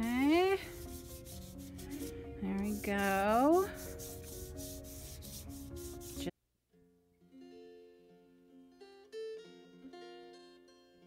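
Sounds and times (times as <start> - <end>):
chalk pastel rubbing on paper: 0.0 - 6.3.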